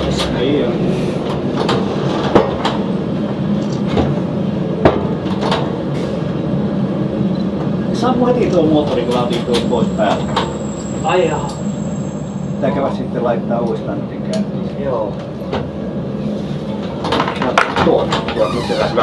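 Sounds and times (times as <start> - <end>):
railbus engine and running-gear rumble: 0.0 - 19.0.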